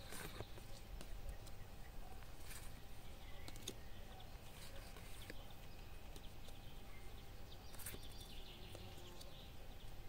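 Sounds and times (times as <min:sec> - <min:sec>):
faint low outdoor background: 0:00.0 - 0:10.0.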